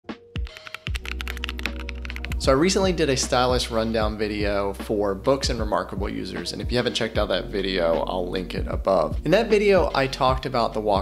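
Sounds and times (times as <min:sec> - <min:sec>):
keyboard typing clicks: 0:00.4 - 0:02.4.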